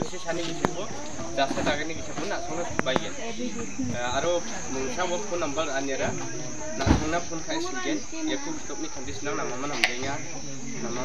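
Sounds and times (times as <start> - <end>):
man talking: 0.0 - 6.2
high-pitched insect drone: 0.0 - 11.0.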